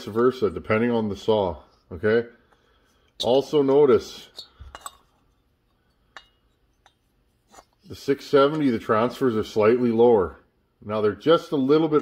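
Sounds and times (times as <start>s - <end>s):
metal cylinders clicking: 4.1s - 8.8s.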